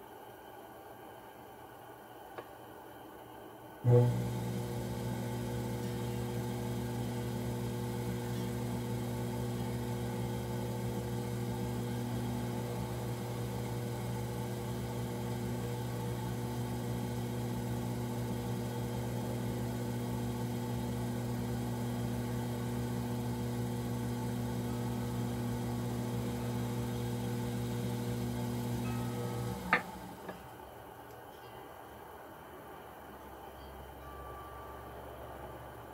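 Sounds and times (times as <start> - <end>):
potter's wheel motor humming: 3.8 - 30.5.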